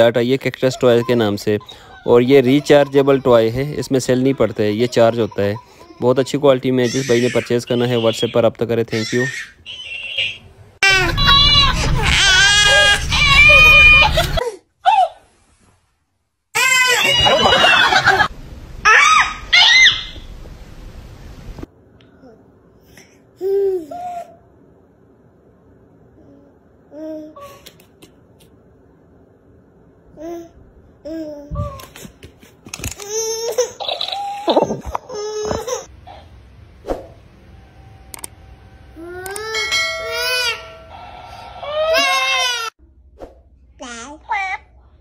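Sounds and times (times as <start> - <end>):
baby squealing: 0.6 - 6.2, 6.8 - 10.0, 16.6 - 17.7, 18.9 - 20.2, 41.5 - 42.7
infant wailing cries: 0.7 - 8.2, 41.6 - 42.8.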